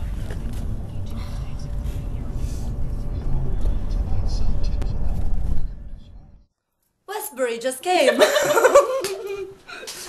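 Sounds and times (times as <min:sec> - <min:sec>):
road and engine rumble: 0:00.0 - 0:06.5.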